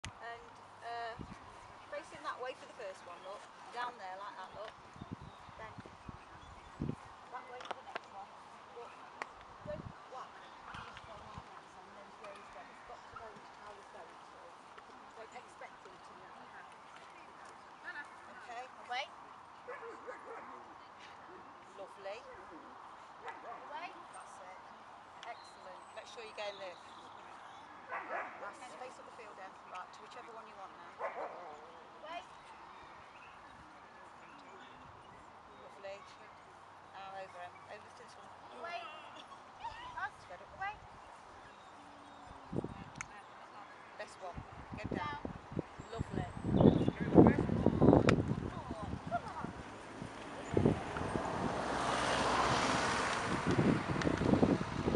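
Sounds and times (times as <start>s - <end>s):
wind rushing over microphone: 1.0s - 1.8s, 4.6s - 7.2s, 9.4s - 11.5s, 42.4s - 43.0s, 44.2s - 54.9s
dog barking: 27.9s - 28.4s, 31.0s - 31.6s.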